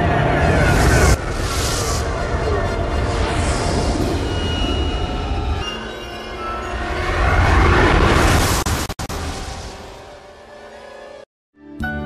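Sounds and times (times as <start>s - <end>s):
low rumbling whoosh: 0.0s - 10.2s.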